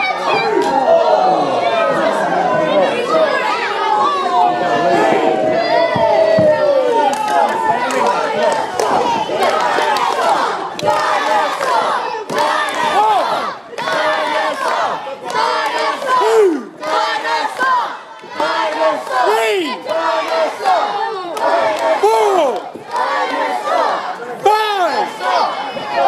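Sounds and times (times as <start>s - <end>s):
children shouting and cheering: 0.0s - 26.0s.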